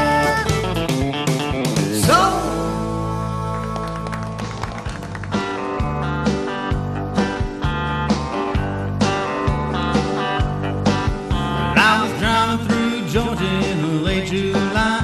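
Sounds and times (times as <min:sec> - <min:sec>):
live country band playing: 0:00.0 - 0:15.0.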